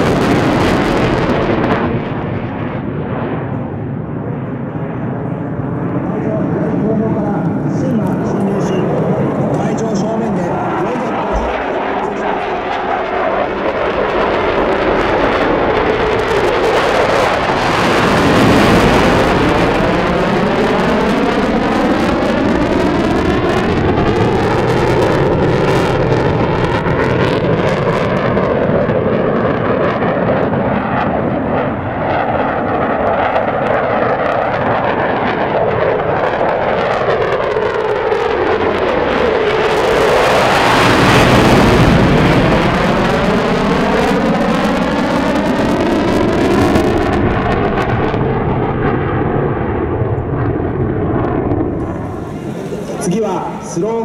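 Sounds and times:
fighter jet engine roar: 0:00.0 - 0:54.0.

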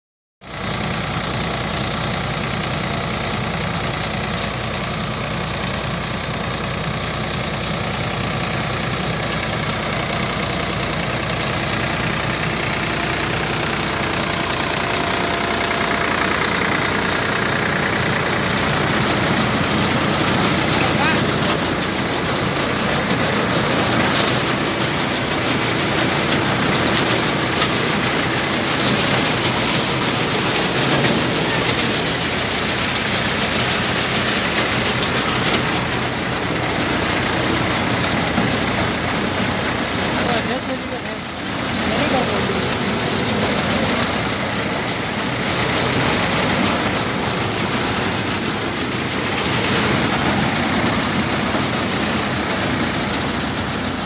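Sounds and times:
thresher running under load: 0:00.4 - 0:54.0
tractor diesel engine: 0:00.4 - 0:54.0.

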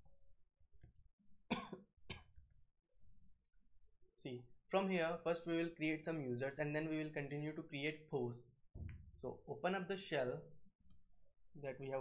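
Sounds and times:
man coughing: 0:01.5 - 0:02.3.

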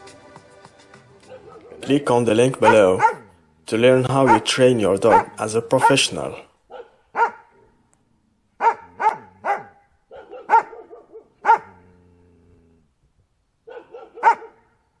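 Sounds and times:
dog barking: 0:01.3 - 0:01.8, 0:02.6 - 0:03.3, 0:04.2 - 0:07.7, 0:08.6 - 0:11.8, 0:13.6 - 0:14.8.

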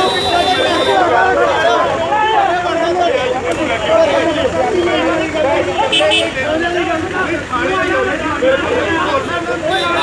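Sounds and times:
men talking and shouting: 0:00.0 - 0:10.0.

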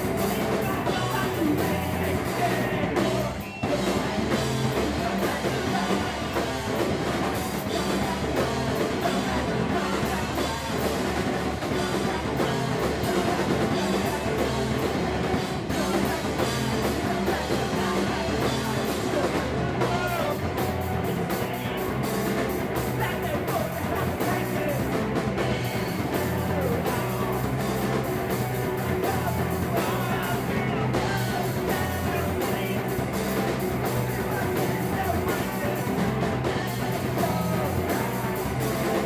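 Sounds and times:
distorted electric guitars: 0:00.0 - 0:39.0
drum kit: 0:00.0 - 0:39.0
person singing: 0:00.0 - 0:39.0.

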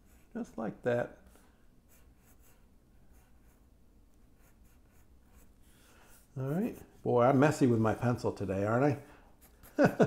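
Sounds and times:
pencil scratching on paper: 0:00.0 - 0:00.4, 0:01.8 - 0:08.2, 0:09.4 - 0:09.9.

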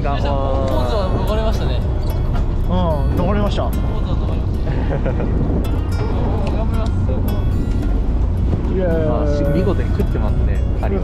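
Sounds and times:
background music: 0:00.0 - 0:11.0
boat engine droning: 0:00.0 - 0:11.0.

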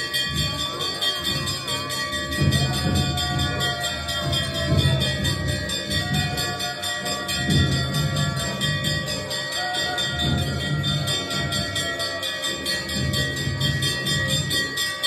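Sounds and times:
large bell struck rapidly: 0:00.0 - 0:15.0.

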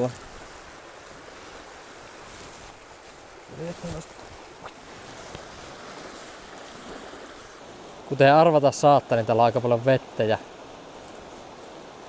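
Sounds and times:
river water flowing over rapids: 0:00.0 - 0:12.0.

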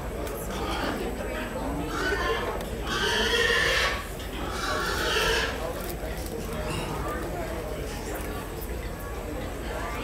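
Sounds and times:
pig squealing: 0:01.9 - 0:05.6.

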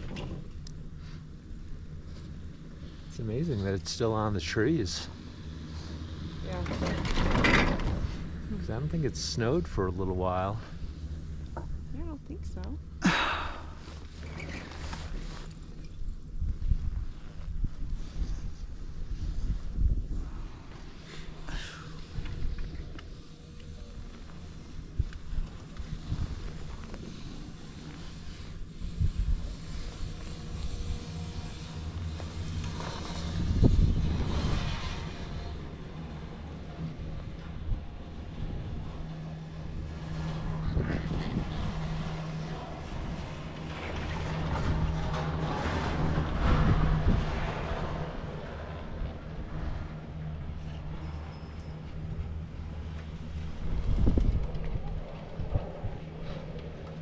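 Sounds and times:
chairlift low hum: 0:00.0 - 0:57.0.

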